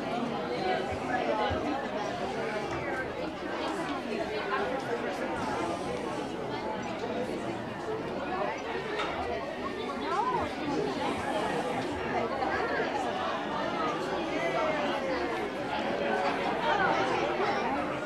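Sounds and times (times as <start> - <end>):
audience chatter: 0.0 - 18.0.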